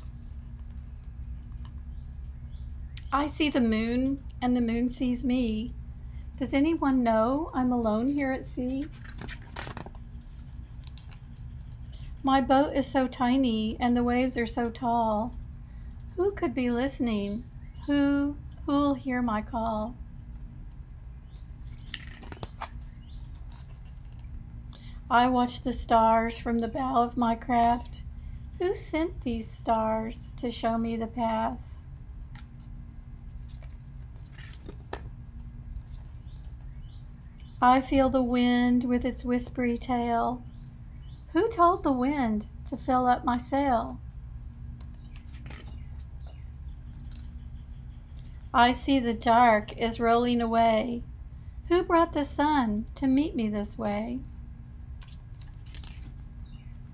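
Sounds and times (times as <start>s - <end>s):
low background hum: 0.0s - 56.9s
faint bird chirps: 1.9s - 3.2s
book page turning: 8.8s - 12.2s, 21.7s - 24.4s, 32.3s - 35.1s, 35.7s - 36.7s, 44.8s - 46.1s, 47.0s - 47.4s, 55.0s - 56.3s.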